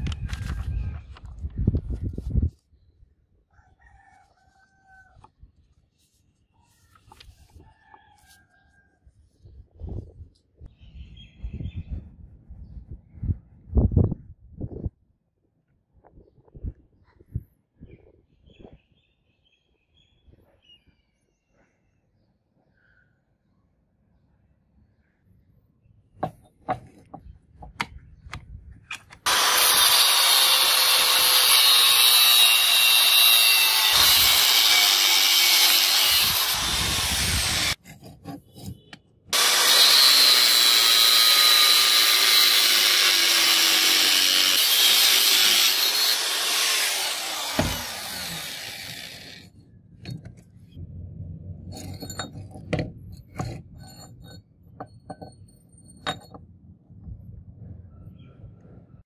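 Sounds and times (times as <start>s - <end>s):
angle grinder cutting steel: 29.3s - 37.8s, 39.4s - 49.6s.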